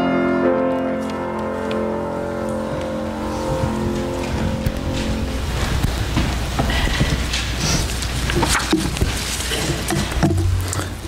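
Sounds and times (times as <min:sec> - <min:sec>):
hymn chord ringing: 0:00.0 - 0:05.8
congregation rustling and shuffling: 0:00.1 - 0:11.0.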